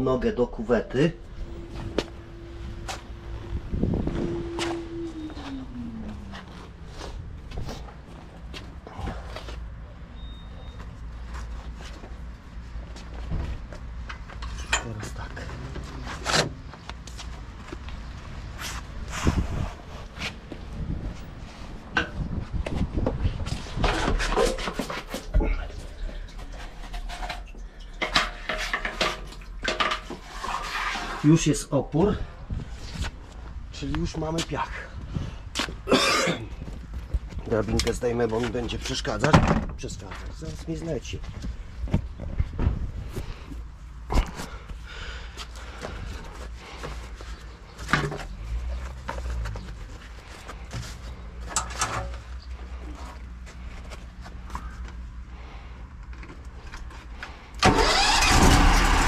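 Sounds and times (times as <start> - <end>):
low hum: 0.5 - 10.4
tone sliding down in pitch: 1.3 - 6.7.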